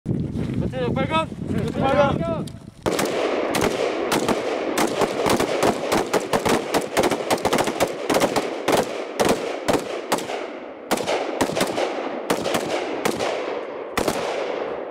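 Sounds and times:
rifle shots echoing: 0:02.8 - 0:14.9.

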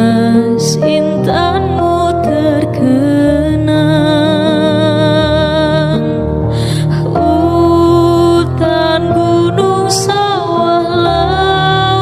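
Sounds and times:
slow melody of held notes: 0:00.0 - 0:12.0.

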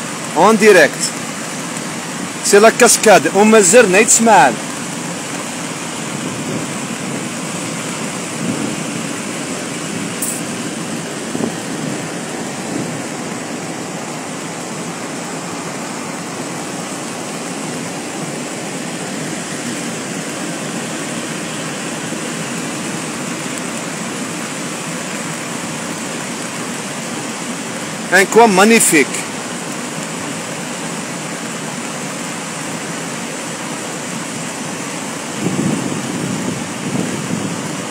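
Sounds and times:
waterfall rushing: 0:00.0 - 0:37.9.

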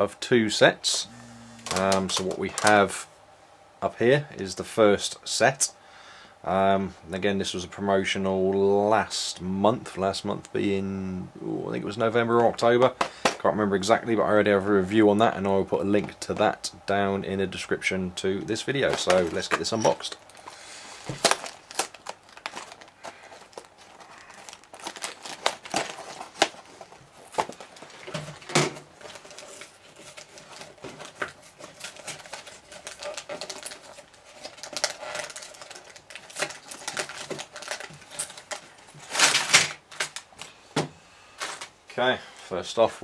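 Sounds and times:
plastic bags rustling: 0:01.2 - 0:03.0, 0:18.5 - 0:40.6, 0:41.4 - 0:41.8.

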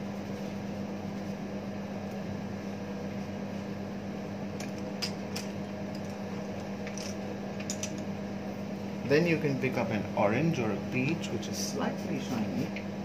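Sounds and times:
ventilation fan hum: 0:00.0 - 0:13.0.

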